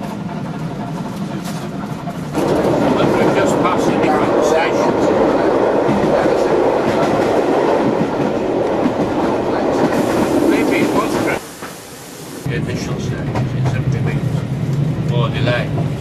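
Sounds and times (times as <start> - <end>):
train wheels clicking over rail joints: 0.0 - 4.2.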